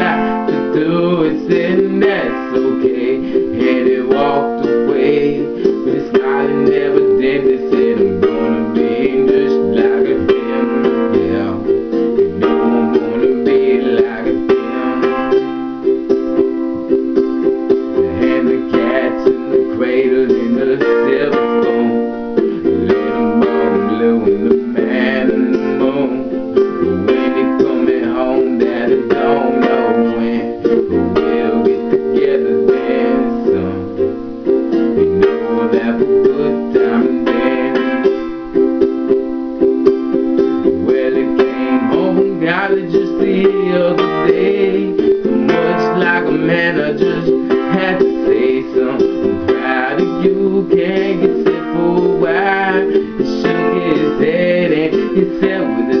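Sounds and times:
man singing: 0.0 - 16.2, 16.8 - 38.6, 40.4 - 56.0
ukulele strummed in chords: 0.0 - 56.0.

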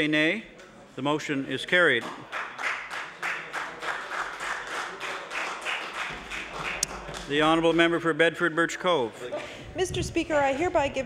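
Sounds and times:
hands clapping: 2.0 - 7.9.

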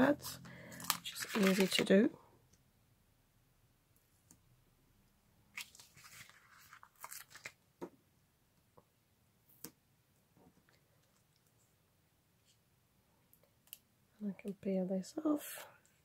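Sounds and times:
paper crackling and rustling: 0.2 - 1.9, 5.6 - 7.6.

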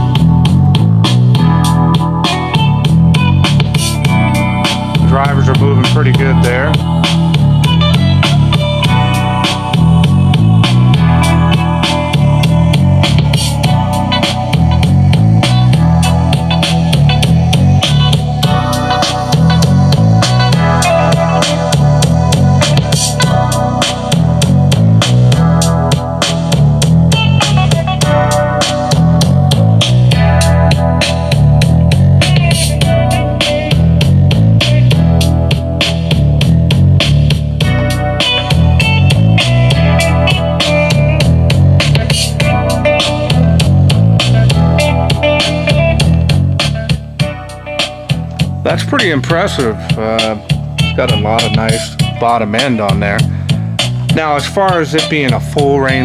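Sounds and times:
guitar: 0.0 - 56.0
steady drum beat: 0.0 - 56.0
strong bass line: 0.0 - 56.0.

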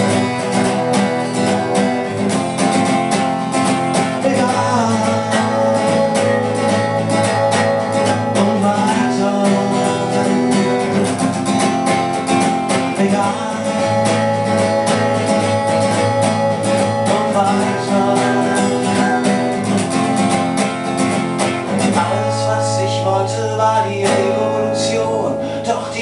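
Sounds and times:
acoustic guitar strumming: 0.0 - 26.0.

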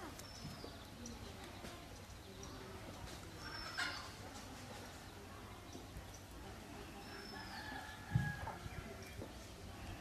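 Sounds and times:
high chirps of small birds: 0.0 - 10.0.

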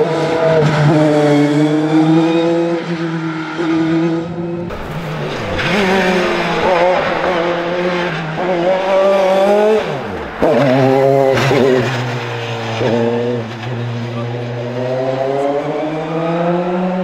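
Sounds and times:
race car engine revving: 0.0 - 17.0.

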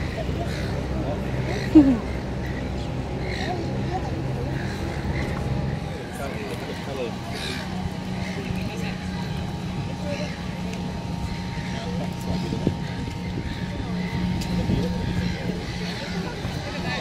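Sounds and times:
distant voices talking: 0.0 - 17.0
low mechanical hum: 0.0 - 17.0.

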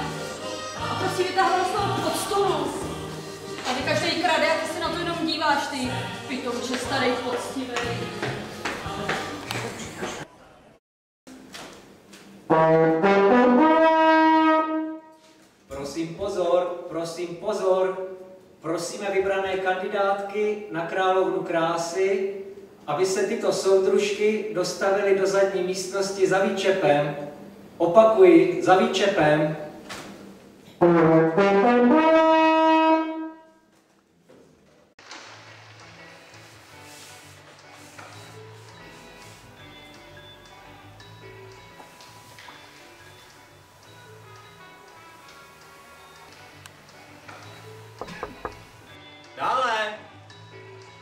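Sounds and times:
brass fanfare: 12.5 - 15.2, 30.8 - 33.6
brass instrument rising phrase: 30.8 - 33.4.

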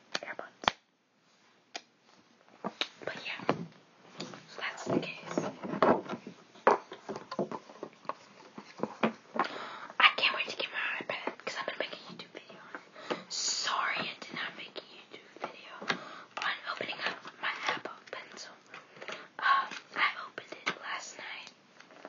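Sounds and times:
person whispering: 0.2 - 0.6, 3.0 - 3.6, 4.5 - 5.6, 10.0 - 18.7, 19.4 - 21.6.

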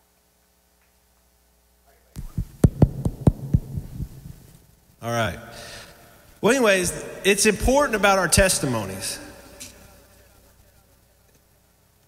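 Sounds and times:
microphone handling thumps: 2.2 - 4.5
low hum: 2.2 - 12.0.

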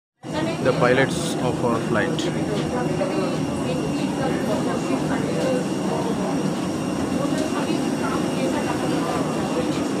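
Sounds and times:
low drone of machinery: 0.2 - 10.0.

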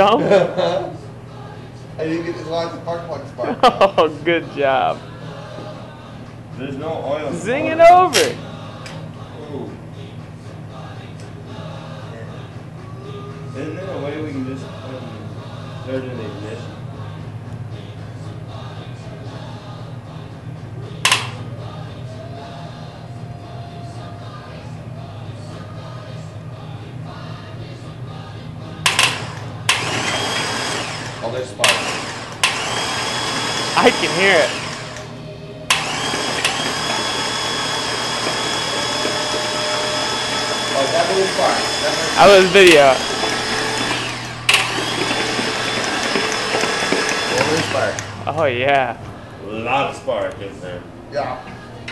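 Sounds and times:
steady low hum: 0.0 - 51.9
starter motor cranking engine: 21.0 - 21.4, 28.9 - 35.1, 35.7 - 48.3
spark plug sharp snap: 21.1 - 21.4, 28.9 - 29.9.

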